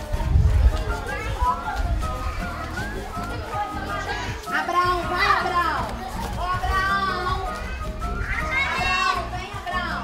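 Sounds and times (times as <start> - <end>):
music: 0.0 - 10.0
children calling out: 0.8 - 10.0.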